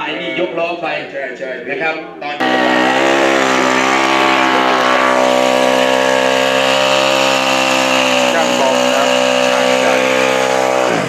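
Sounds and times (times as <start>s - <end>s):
motorcycle engine at high revs: 2.4s - 11.0s.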